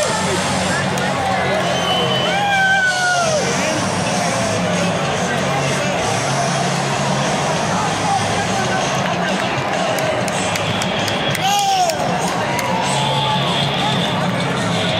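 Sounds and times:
fans shouting and chattering: 0.0s - 14.9s
stadium crowd roaring: 0.0s - 14.9s
loud shout: 1.4s - 3.6s, 11.3s - 13.6s.

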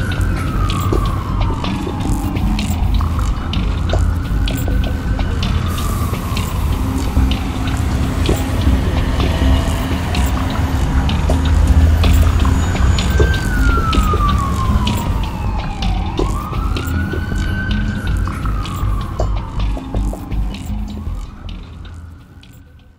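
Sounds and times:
music with heavy low beat: 0.0s - 22.9s
siren wailing: 0.0s - 22.9s.

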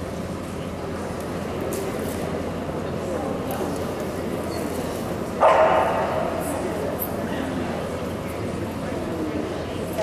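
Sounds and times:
busy hall background noise: 0.0s - 10.0s
dog barking: 5.4s - 6.3s.

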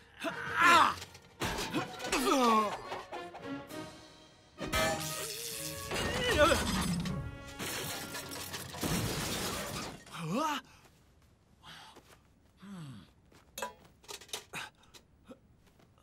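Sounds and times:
crash and clatter of metal armour: 0.7s - 3.4s, 4.8s - 10.2s.

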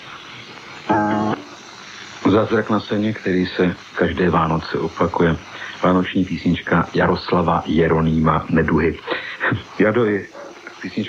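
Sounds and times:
tape hiss: 0.0s - 11.0s
man's held vocal hum: 0.8s - 2.3s.

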